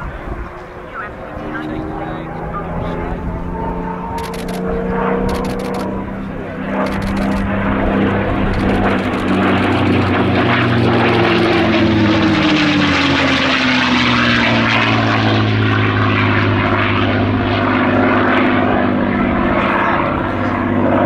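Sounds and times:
propeller aircraft engine passing: 0.0 - 21.0.

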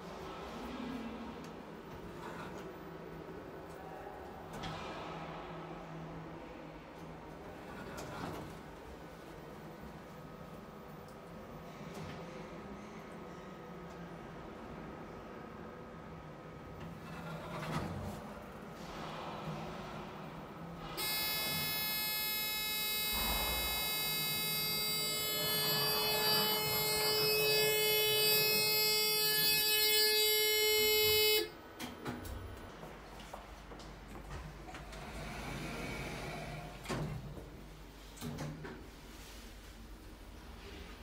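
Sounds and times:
lift drive electronic whine: 21.0 - 31.5.

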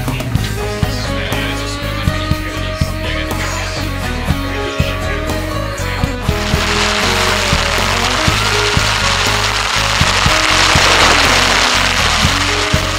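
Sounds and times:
music with steady drumbeat: 0.0 - 12.9
loud hiss: 6.3 - 12.9.

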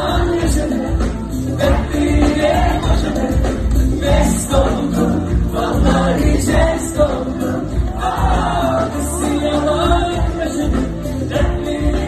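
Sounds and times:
live pop band with vocals: 0.0 - 12.0
several voices singing: 0.0 - 12.0.

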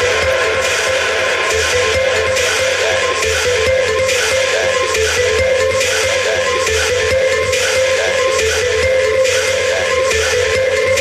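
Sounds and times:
pulsing bass: 0.0 - 11.0
techno music: 0.0 - 11.0.

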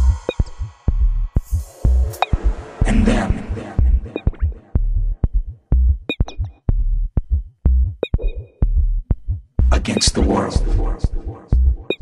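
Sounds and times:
kick drum and bass beat: 0.0 - 2.2, 3.8 - 12.0
voice-like sample: 2.7 - 4.7, 9.7 - 11.6.

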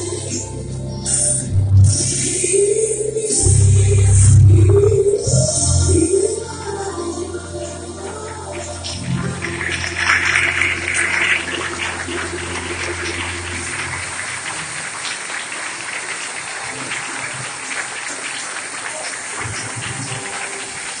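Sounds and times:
dance music: 0.0 - 15.2, 19.1 - 21.0
congregation applauding: 8.4 - 21.0.

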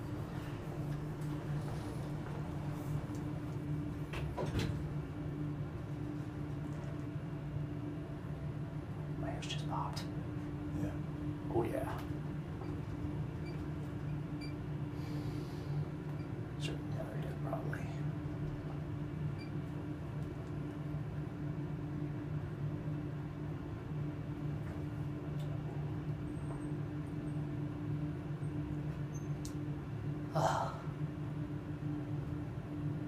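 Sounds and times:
elevator hum: 0.0 - 33.0
elevator low rumble: 0.0 - 33.0.

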